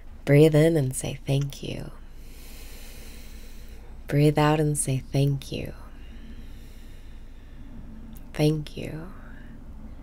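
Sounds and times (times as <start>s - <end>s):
woman inhaling through nose: 2.2s - 3.8s.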